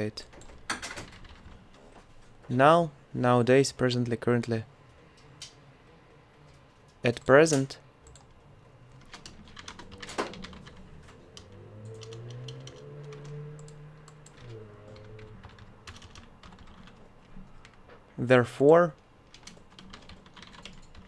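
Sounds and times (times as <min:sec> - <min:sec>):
computer keyboard typing: 0:00.2 - 0:01.6, 0:08.0 - 0:08.4, 0:09.0 - 0:17.8, 0:19.2 - 0:21.0.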